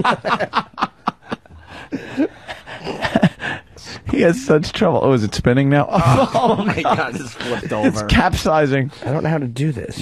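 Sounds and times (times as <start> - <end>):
men laughing and snickering: 0.0 - 4.0, 5.9 - 8.0.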